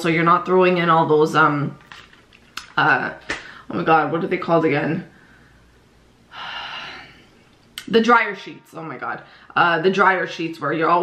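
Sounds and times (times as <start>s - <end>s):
woman breathing: 3.4s - 3.7s, 5.1s - 7.5s, 9.2s - 9.6s.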